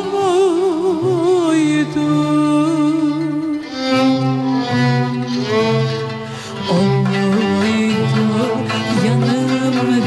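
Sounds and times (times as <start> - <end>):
bowed strings melody: 0.0 - 10.0.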